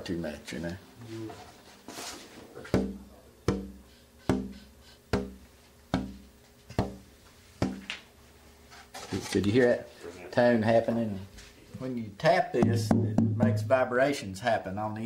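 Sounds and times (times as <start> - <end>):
finger tapping on guitar top: 2.7 - 7.0.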